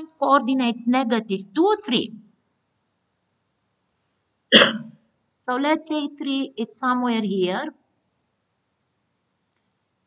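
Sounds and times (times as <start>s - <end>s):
woman coughing: 4.5s - 4.9s.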